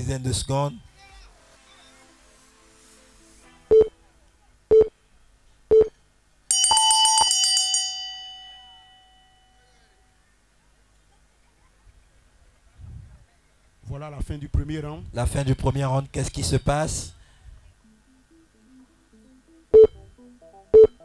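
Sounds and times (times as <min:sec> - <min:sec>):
timer short beeps: 0:03.7 - 0:03.9, 0:04.7 - 0:04.9, 0:05.7 - 0:05.9, 0:18.1 - 0:21.0
round bell ringing: 0:06.5 - 0:10.0.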